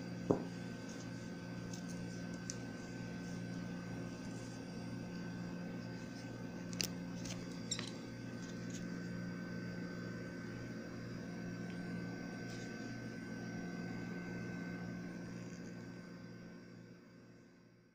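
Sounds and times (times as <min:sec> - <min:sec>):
background hum: 0:00.0 - 0:17.9.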